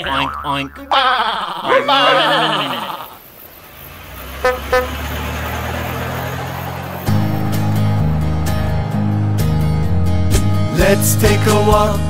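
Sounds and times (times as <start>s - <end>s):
wavering voice: 0.0s - 3.2s
vehicle engine rumble: 3.2s - 10.7s
horn toots: 4.4s - 5.0s.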